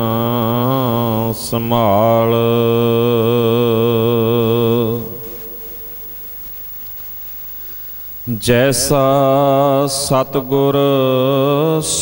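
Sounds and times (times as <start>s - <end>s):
man chanting: 0.0s - 6.2s, 8.2s - 12.0s.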